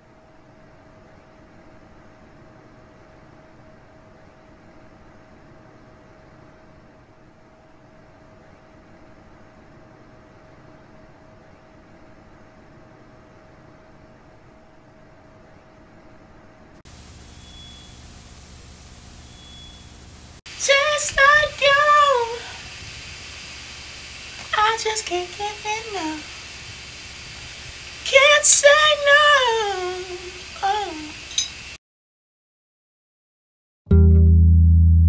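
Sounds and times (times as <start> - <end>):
steady low hum: 0.0 - 31.7
static white noise: 0.0 - 31.8
faint hiss: 16.9 - 31.8
short high beep: 17.4 - 17.9, 19.2 - 19.9.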